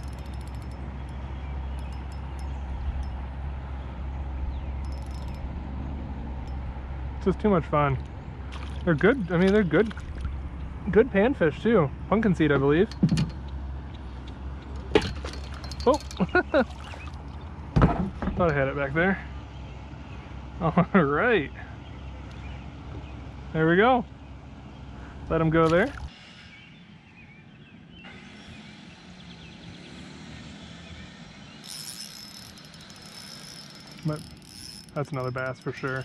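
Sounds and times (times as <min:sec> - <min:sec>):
steady low rumble: 0:00.0 - 0:16.6
outdoor background on open water: 0:00.0 - 0:36.0
rapid ticking: 0:31.7 - 0:36.0.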